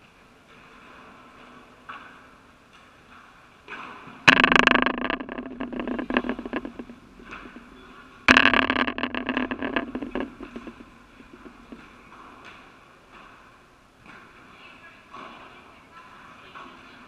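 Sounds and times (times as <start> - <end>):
soft knocks: 4.3 - 7.6
padel ball hitting enclosure: 4.3 - 7.7, 8.3 - 11.9.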